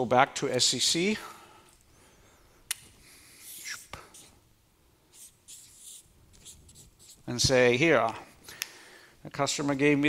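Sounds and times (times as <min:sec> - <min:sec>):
person breathing at microphone: 0:08.3 - 0:09.2.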